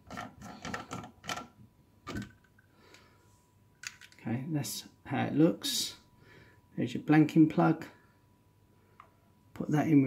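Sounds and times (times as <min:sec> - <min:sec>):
plastic clicks and knocks: 0:00.0 - 0:02.6, 0:03.8 - 0:04.2.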